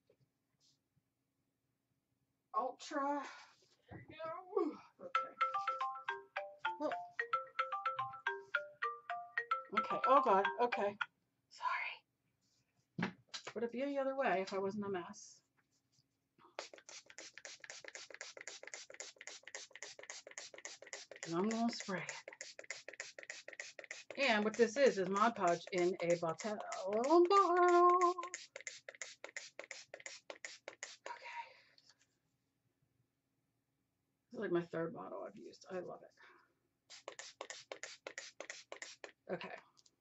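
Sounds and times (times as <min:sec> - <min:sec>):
applicator rubbing over paper: 0:16.6 - 0:31.2, 0:36.9 - 0:39.3
spray bottle spritzes: 0:16.6 - 0:31.2, 0:36.9 - 0:39.2.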